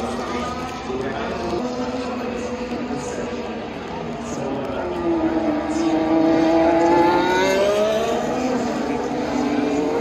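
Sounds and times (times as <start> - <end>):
crowd voices: 0.0 - 10.0
racing car engine: 0.0 - 10.0.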